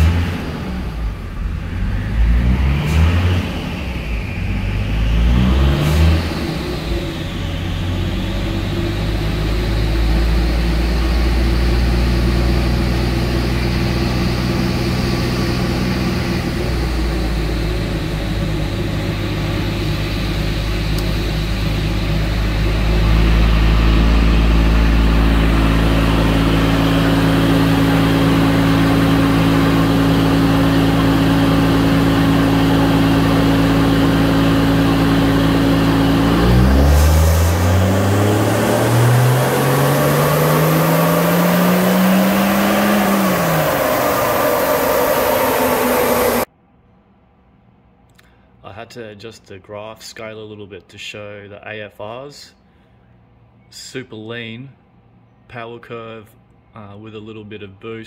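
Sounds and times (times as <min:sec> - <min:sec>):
diesel engine revving under load: 0:00.0 - 0:46.5.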